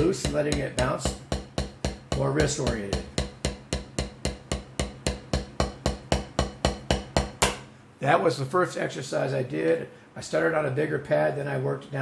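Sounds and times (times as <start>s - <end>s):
drumsticks striking rubber practice pad: 0.0s - 7.7s.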